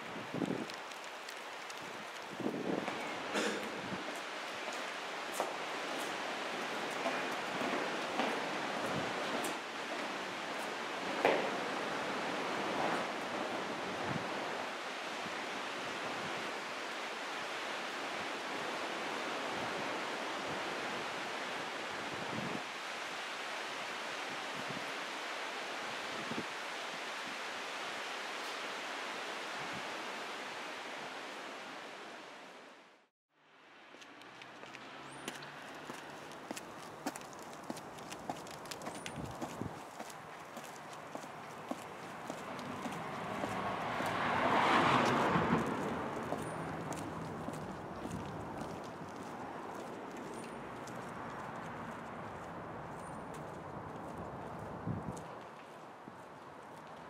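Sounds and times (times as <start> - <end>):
outdoor rushing noise: 33.6 - 49.7.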